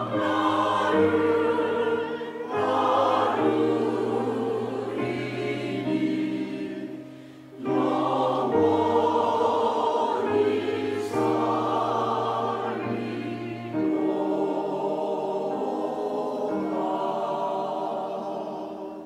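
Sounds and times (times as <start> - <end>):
choir breath: 0.0 - 19.0
choir singing a hymn: 0.0 - 19.0
piano accompaniment: 0.0 - 19.0.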